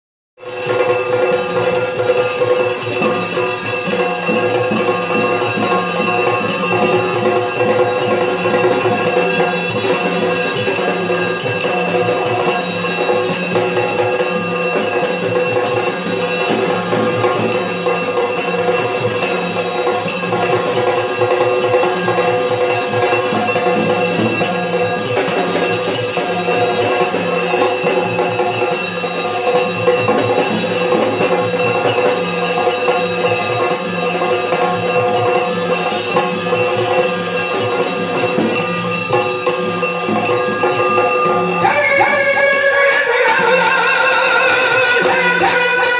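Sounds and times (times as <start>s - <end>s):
drum strokes: 0.4s - 45.9s
harmonium drone: 0.4s - 45.9s
jingling bells and small cymbals: 0.4s - 45.9s.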